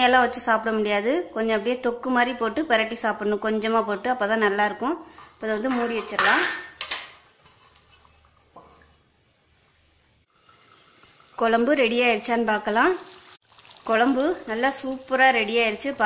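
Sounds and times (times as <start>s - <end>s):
lid and ladle clinking on pan: 5.6s - 7.8s.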